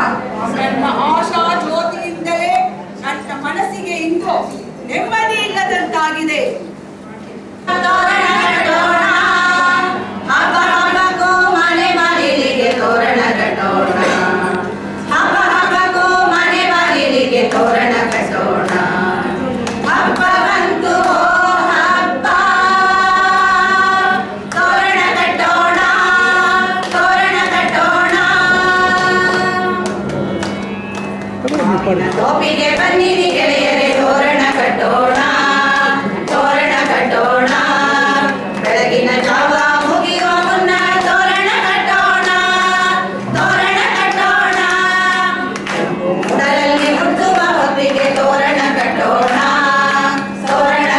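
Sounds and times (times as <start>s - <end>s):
women singing together: 7.6s - 30.1s, 32.0s - 50.9s.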